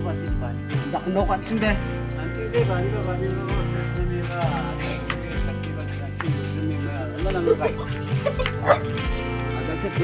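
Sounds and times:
background music: 0:00.0 - 0:10.0
dog barking: 0:08.6 - 0:09.0.

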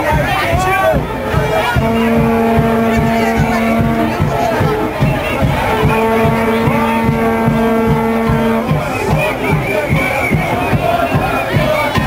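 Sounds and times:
crowd voices: 0:00.0 - 0:12.0
low drum-like beats: 0:00.0 - 0:12.0
loud low horn-like tone: 0:00.9 - 0:09.4.

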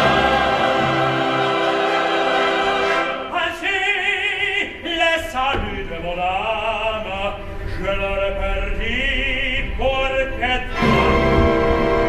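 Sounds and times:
choral opera singing: 0:00.0 - 0:07.2, 0:07.8 - 0:12.0.

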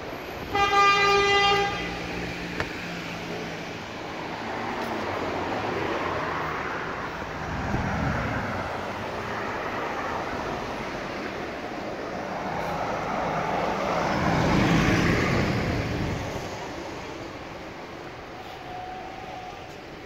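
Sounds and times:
street traffic passing: 0:00.0 - 0:20.0.

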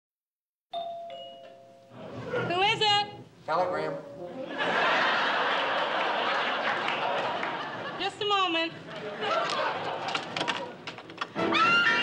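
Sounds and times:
two-note doorbell chime: 0:00.7 - 0:02.0.

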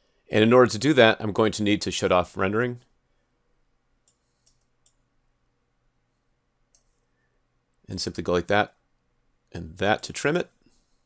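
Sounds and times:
computer mouse clicks: 0:04.0 - 0:05.1, 0:06.7 - 0:07.0.

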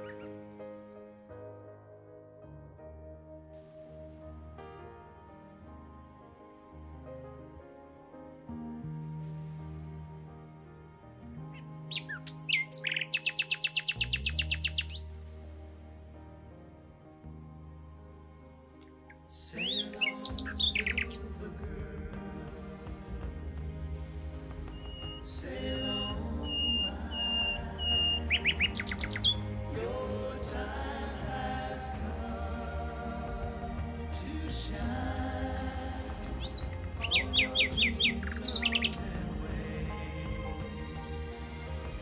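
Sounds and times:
soft background music: 0:00.0 - 0:42.0
songbird chirping: 0:11.5 - 0:15.4, 0:18.8 - 0:42.0
small songbird calling: 0:11.6 - 0:15.1, 0:19.6 - 0:21.3, 0:24.7 - 0:29.5, 0:36.4 - 0:39.0.

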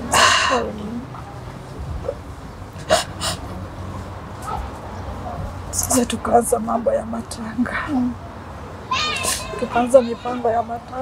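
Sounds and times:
woman speaking: 0:00.2 - 0:01.1, 0:05.8 - 0:08.2, 0:09.5 - 0:11.0.

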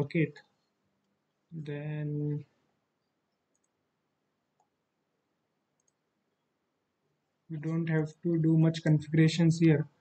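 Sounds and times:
faint click: 0:05.8 - 0:06.0.

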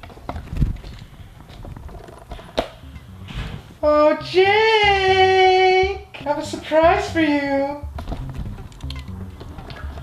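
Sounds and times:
person calling out loudly: 0:03.8 - 0:07.9.

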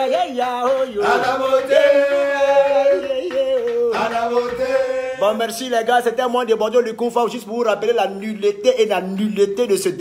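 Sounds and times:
men singing chanted refrain: 0:00.0 - 0:05.3.

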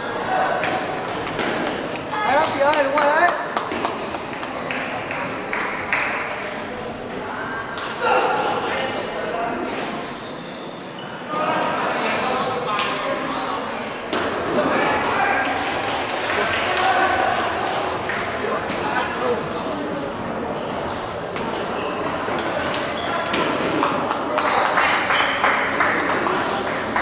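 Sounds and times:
indistinct chatter: 0:00.0 - 0:27.0.

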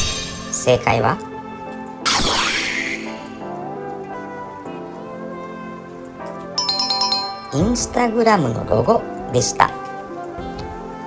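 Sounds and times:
soft background music: 0:00.0 - 0:11.0
bright ringing chime: 0:06.6 - 0:07.9.

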